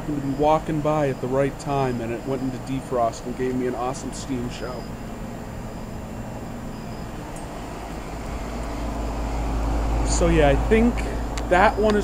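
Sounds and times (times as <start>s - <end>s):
heat pump compressor and fan hum: 0.0s - 12.0s.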